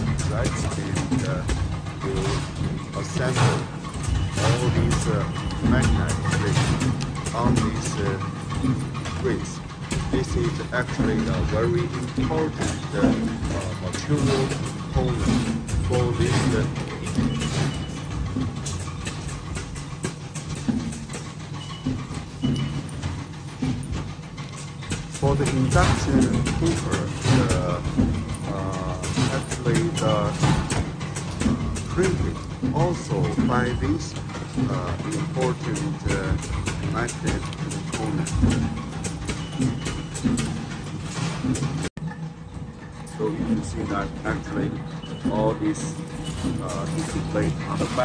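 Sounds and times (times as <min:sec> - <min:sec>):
low machine hum: 0:00.0 - 0:48.0.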